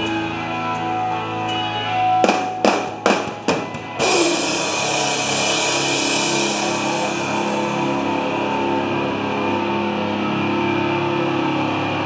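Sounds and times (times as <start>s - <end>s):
live pop punk band playing: 1.8s - 11.2s
cymbal crash: 2.2s - 9.0s.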